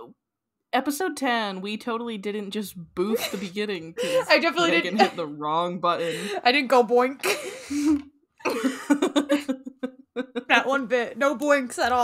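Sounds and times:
woman laughing: 0:03.1 - 0:05.3, 0:07.2 - 0:10.7.

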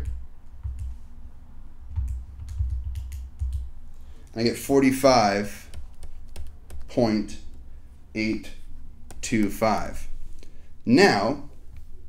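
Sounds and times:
calculator keys clicking: 0:02.0 - 0:03.7.

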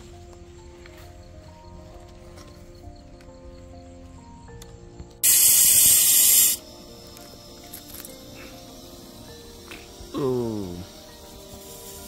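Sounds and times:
faint background music: 0:00.0 - 0:12.0
pressure cooker steam hiss: 0:05.2 - 0:06.8, 0:10.0 - 0:12.0.

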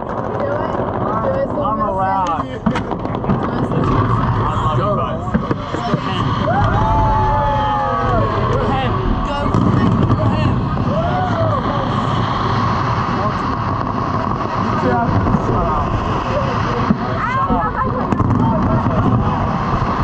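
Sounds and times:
crowd talking and calling out: 0:00.0 - 0:20.0
steady low rumble: 0:00.0 - 0:20.0.

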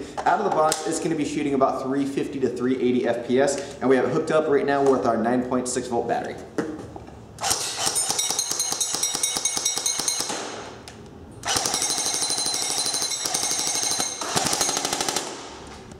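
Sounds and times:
airsoft gun firing full-auto: 0:11.4 - 0:15.7.

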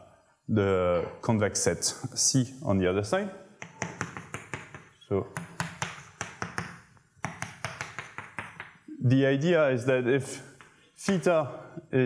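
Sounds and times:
chalk tapping on a blackboard: 0:03.6 - 0:08.9, 0:10.6 - 0:11.3.

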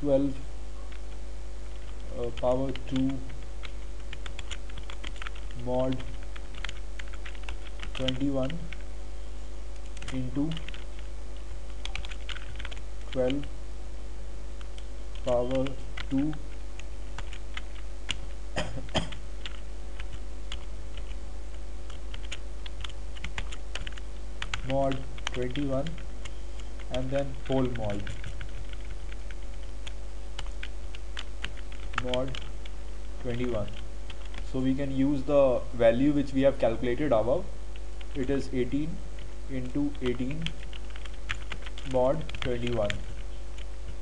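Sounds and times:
steady low hum: 0:00.0 - 0:44.0
keyboard keystrokes: 0:09.9 - 0:11.0, 0:11.8 - 0:13.5.

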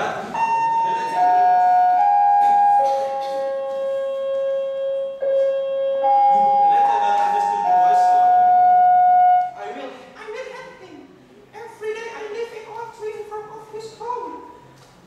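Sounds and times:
slow flute-like tune: 0:00.4 - 0:09.6.

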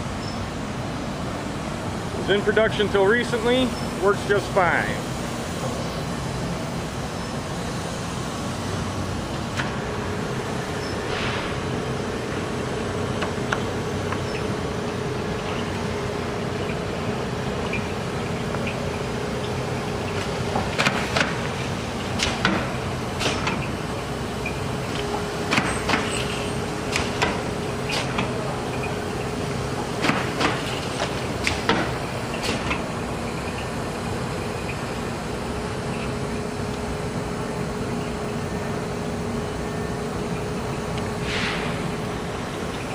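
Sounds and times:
machine humming: 0:00.0 - 0:42.9.

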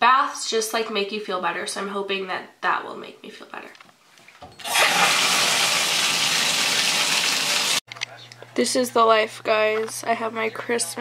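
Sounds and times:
water running into bathtub: 0:04.4 - 0:07.8.

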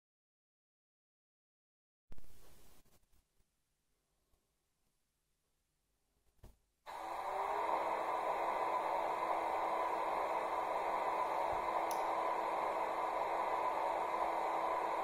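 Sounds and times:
model train fan-like whir: 0:06.9 - 0:15.0.

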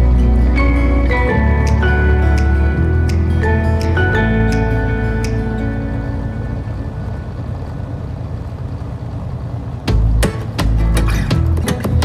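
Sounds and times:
music: 0:00.0 - 0:07.2, 0:09.8 - 0:12.0
truck road and engine noise: 0:00.0 - 0:12.0.

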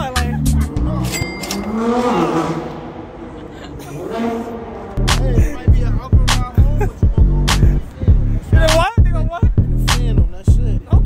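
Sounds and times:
hip hop music with heavy bass: 0:00.0 - 0:01.9, 0:04.9 - 0:11.0.

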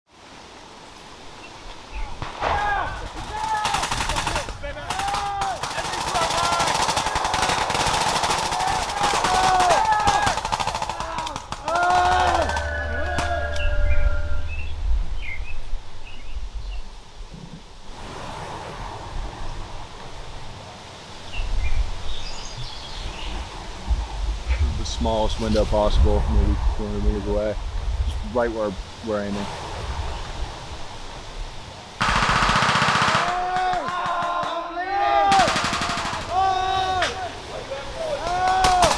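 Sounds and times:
rifle and machine-gun fire: 0:02.2 - 0:12.7, 0:32.0 - 0:34.5, 0:35.3 - 0:36.6
people shouting: 0:02.4 - 0:14.5, 0:32.9 - 0:38.9.

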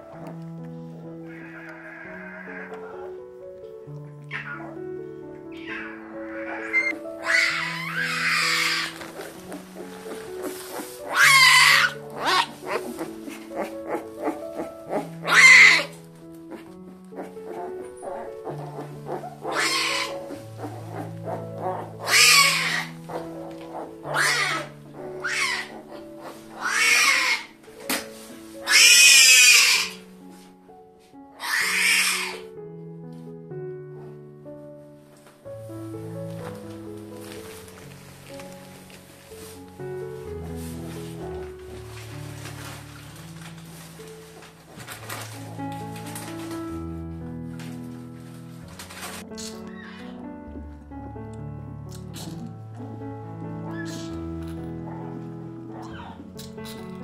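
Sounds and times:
slow background music: 0:00.0 - 0:57.0
tiger cubs crying: 0:01.2 - 0:03.2, 0:04.2 - 0:27.6, 0:28.6 - 0:30.1, 0:31.4 - 0:32.5, 0:49.6 - 0:50.3, 0:52.3 - 0:56.7.

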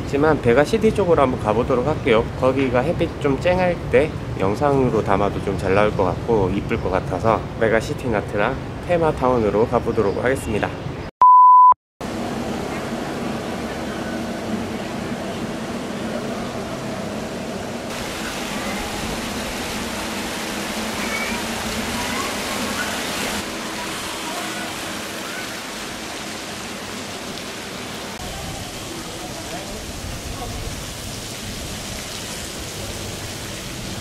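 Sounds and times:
fountain jets splashing: 0:12.1 - 0:34.0.

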